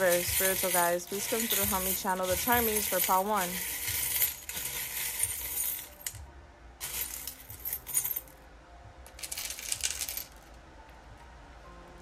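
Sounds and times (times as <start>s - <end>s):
metal charms jangling in a bowl: 0.0s - 6.2s, 6.8s - 8.3s, 9.2s - 10.3s.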